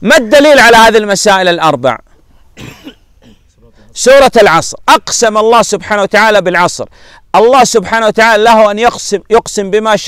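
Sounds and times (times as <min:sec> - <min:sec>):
man clearing throat: 0:02.6 - 0:03.6.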